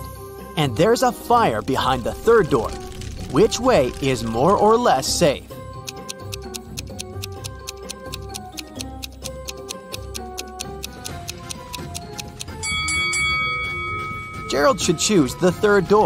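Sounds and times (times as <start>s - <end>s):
light background music: 0.0s - 16.0s
clock-like ticking: 1.6s - 13.4s
held ringing tone: 12.5s - 16.0s.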